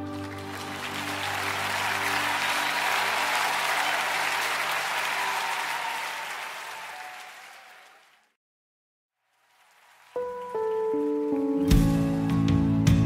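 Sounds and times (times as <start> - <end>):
audience applause: 0.0 - 8.4, 9.3 - 12.4.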